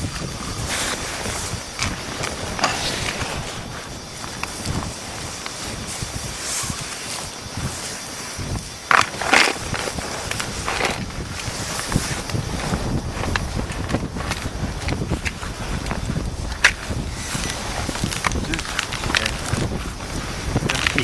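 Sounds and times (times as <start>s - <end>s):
wind rumble on microphone: 0.0s - 21.0s.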